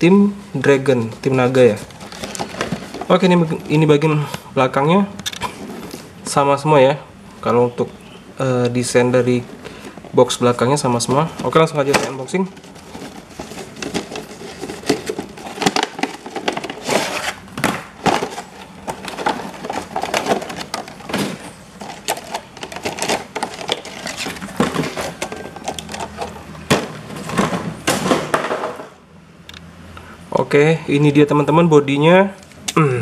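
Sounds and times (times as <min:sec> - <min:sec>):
plastic packaging crinkling: 0:01.8 - 0:03.6, 0:11.0 - 0:26.5.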